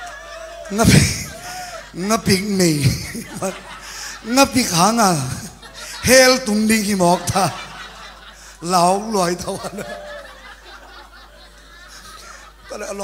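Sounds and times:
man speaking: 0.7 - 3.6, 4.2 - 7.7, 8.6 - 10.0
man laughing into a microphone: 0.7 - 13.0.

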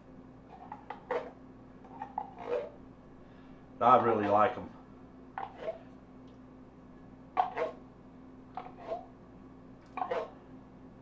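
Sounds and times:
metal spoon scraping tin can: 2.2 - 2.8.

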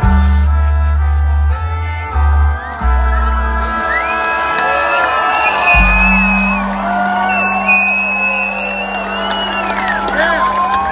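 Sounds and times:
live band holding chord: 0.0 - 10.9
audience whooping and cheering: 2.7 - 10.9.

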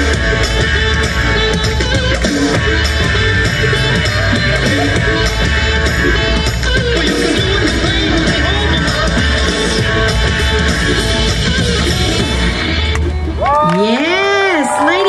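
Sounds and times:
dance music with heavy bass: 0.0 - 12.9
audience cheering and whooping: 13.2 - 15.0.

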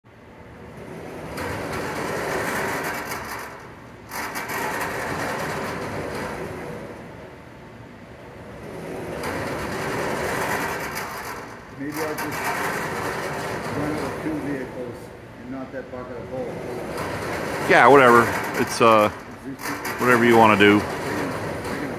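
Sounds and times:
conveyor carriers rattling on rails: 0.4 - 21.9.

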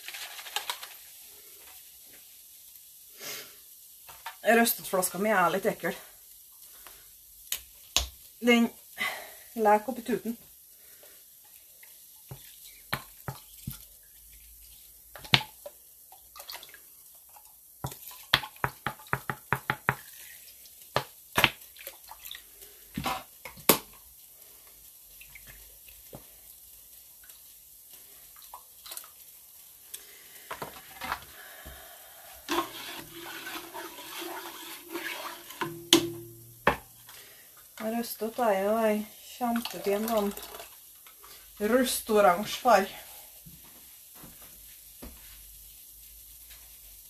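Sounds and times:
running water: 8.4 - 26.5, 28.0 - 43.3.

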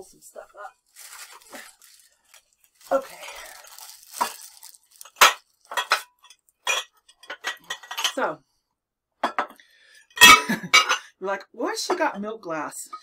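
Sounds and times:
packing material crumpling: 0.8 - 5.8
glassware clinking: 5.2 - 8.2, 10.2 - 11.1.

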